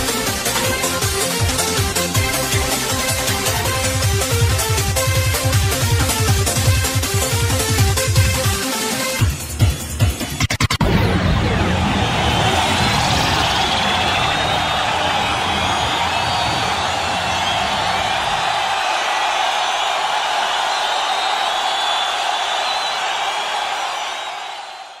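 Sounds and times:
crowd cheering and whooping: 10.8 - 25.0.

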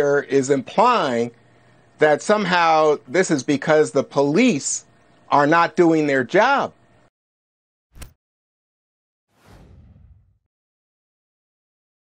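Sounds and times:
low rumble: 9.4 - 10.4.

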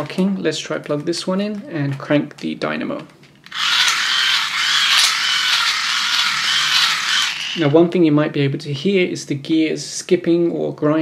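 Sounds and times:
hand-crank generator whirring: 3.5 - 7.8
plastic gears grinding and skipping: 3.5 - 7.8.

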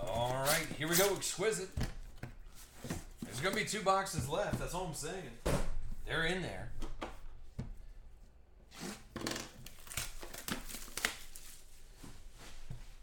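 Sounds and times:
plastic wrap tearing and crinkling: 0.0 - 1.3, 9.2 - 11.7.

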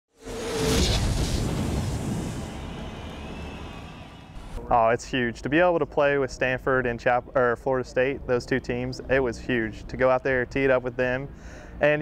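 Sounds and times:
low rumble: 0.2 - 4.7.

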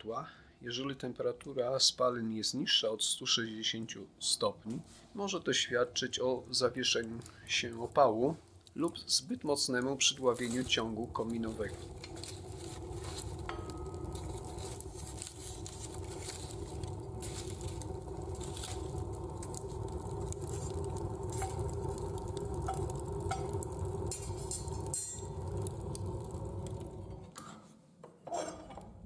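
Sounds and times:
fire rumbling with crackles: 5.2 - 27.4.

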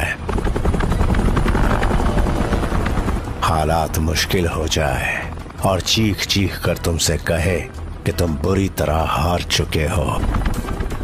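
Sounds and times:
helicopter rotor chopping: 0.0 - 11.0.

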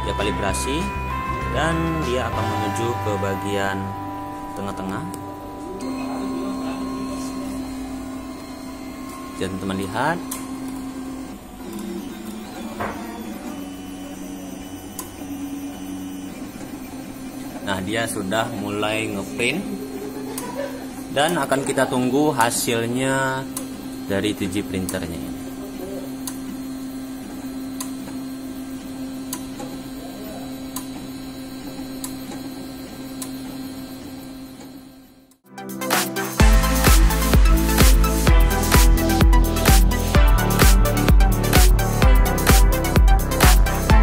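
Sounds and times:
stepper motors humming: 0.0 - 35.4.

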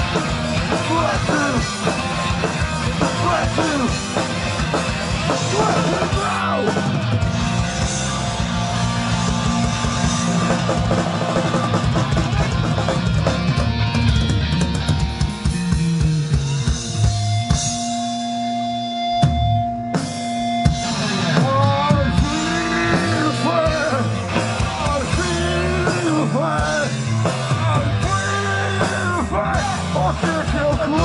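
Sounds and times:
bass guitar: 0.0 - 31.0
distorted electric guitar: 0.0 - 31.0
fast loud drum kit: 0.0 - 31.0.

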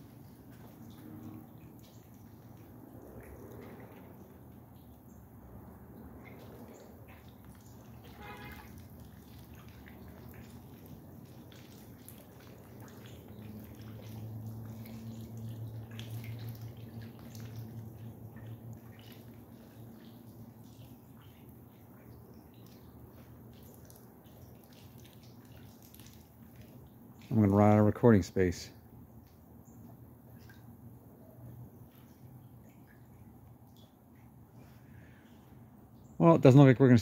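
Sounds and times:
pond aerator bubbling: 0.0 - 37.0
water dripping and splashing: 0.0 - 37.0.

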